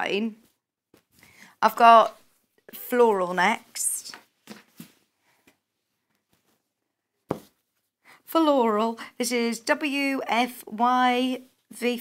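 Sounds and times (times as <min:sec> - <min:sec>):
fabric rustling on cutting mat: 0:02.3 - 0:08.0.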